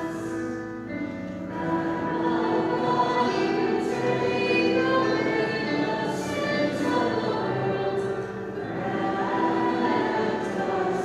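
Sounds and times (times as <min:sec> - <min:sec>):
held accompanying notes: 0:00.0 - 0:11.0
voices singing a hymn: 0:00.0 - 0:11.0.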